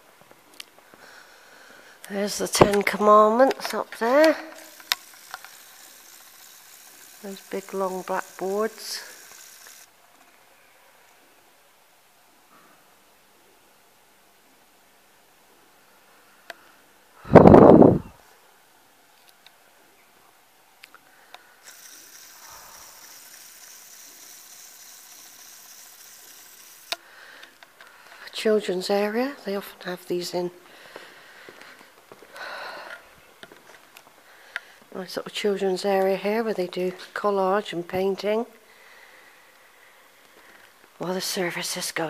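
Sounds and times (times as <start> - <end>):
zoom motor click: 3.6 - 9.9, 21.3 - 27.6
camera zoom motor whine: 4.4 - 10.3, 21.4 - 27.1.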